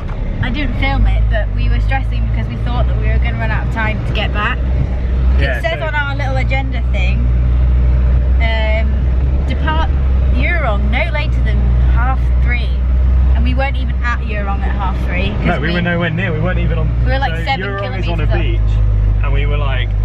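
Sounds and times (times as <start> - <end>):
vehicle rumble from inside cabin: 0.0 - 20.0
woman talking: 0.4 - 4.6, 5.4 - 7.3, 8.4 - 12.8, 13.4 - 15.9, 17.0 - 18.6.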